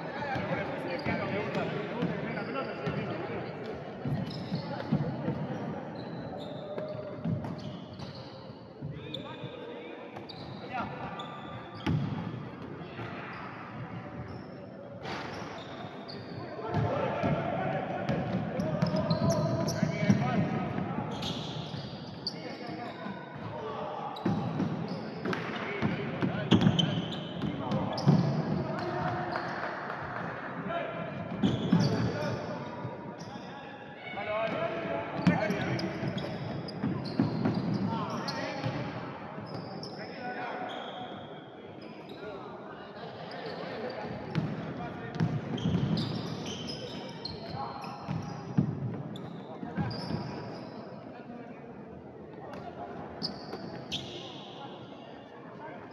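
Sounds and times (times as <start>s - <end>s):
people shouting and talking: 0.0s - 55.9s.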